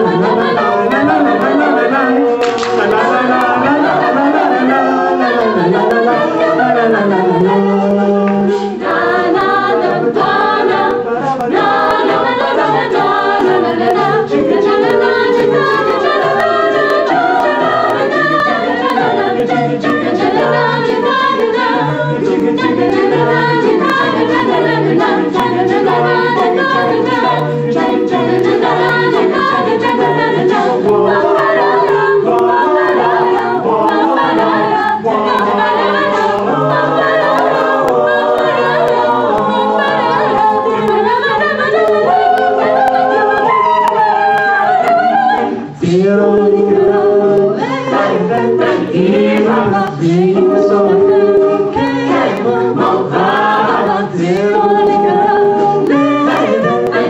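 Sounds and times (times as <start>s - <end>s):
a cappella choir singing: 0.0s - 57.0s.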